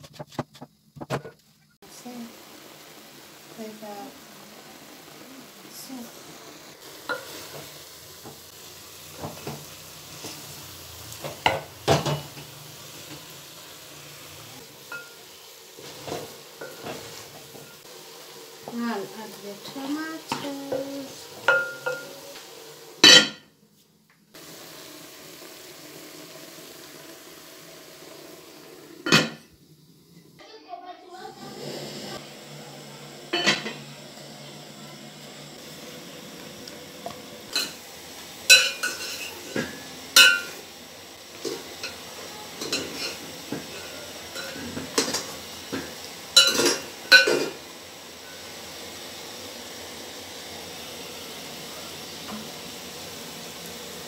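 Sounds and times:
food sizzling: 0.0 - 54.0.

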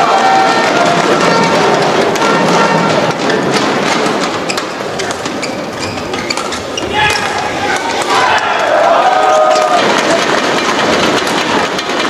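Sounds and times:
crowd noise: 0.0 - 12.0
rackets striking shuttlecock: 0.7 - 8.7
shoes squeaking on court: 4.4 - 8.0.

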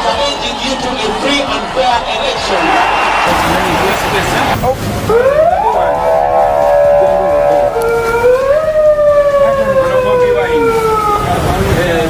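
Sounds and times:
siren wailing: 2.7 - 12.0.

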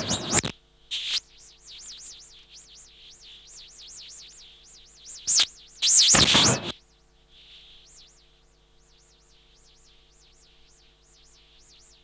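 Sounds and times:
high electronic warble: 0.0 - 0.5.

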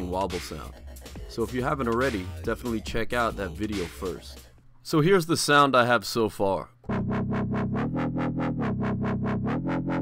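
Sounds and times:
wobble bass synthesizer: 6.9 - 10.0.

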